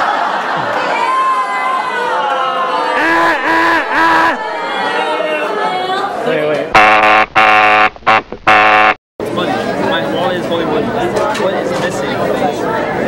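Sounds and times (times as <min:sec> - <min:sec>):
chatter of many voices: 0:00.2 - 0:06.7, 0:09.2 - 0:13.0
fail buzzer: 0:06.8 - 0:09.0.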